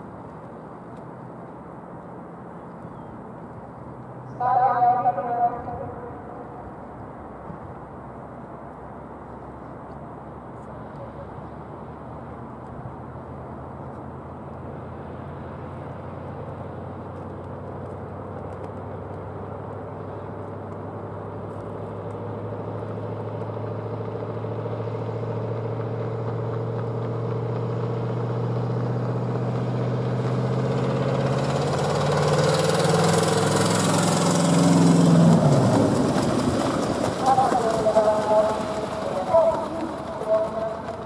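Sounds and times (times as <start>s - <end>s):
car engine running: 12.2s - 41.0s
sulky wheels rolling: 29.1s - 41.0s
horse hoofbeats: 35.1s - 41.0s.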